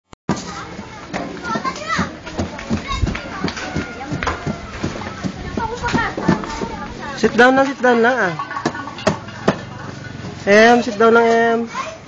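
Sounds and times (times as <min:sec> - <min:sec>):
steady background noise: 0:00.3 - 0:12.0
young children babbling and calling: 0:00.5 - 0:07.2, 0:11.6 - 0:12.0.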